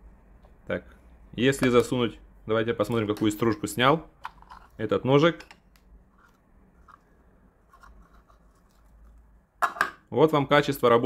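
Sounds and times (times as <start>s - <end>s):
pencil shavings crinkling: 7.7s - 9.3s.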